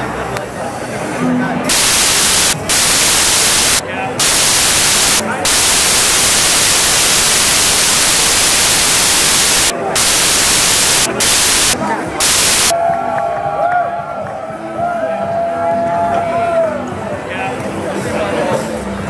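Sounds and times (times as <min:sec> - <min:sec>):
crowd chatter: 0:00.0 - 0:07.1, 0:09.7 - 0:19.0
loud static hiss: 0:01.7 - 0:12.8.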